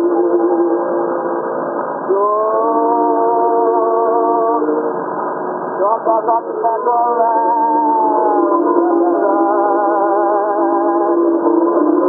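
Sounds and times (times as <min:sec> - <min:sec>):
muffled song with held notes: 0:00.0 - 0:05.1, 0:05.8 - 0:12.0.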